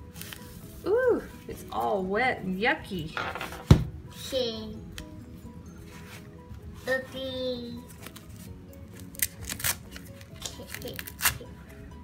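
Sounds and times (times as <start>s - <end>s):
diaper tape tabs ripping: 8.9s - 11.5s.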